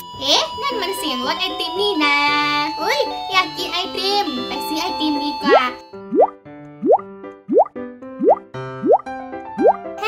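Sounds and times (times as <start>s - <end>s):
playful children's music: 0.0s - 10.0s
rising bloop sound effect: 5.4s - 9.0s, 9.6s - 9.8s.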